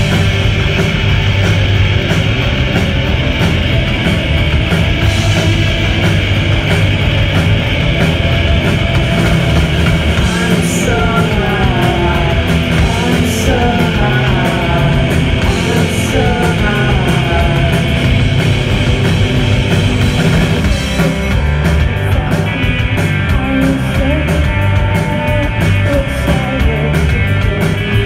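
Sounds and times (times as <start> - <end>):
live rock band playing: 0.0 - 28.0
person singing: 10.2 - 18.1, 21.7 - 28.0.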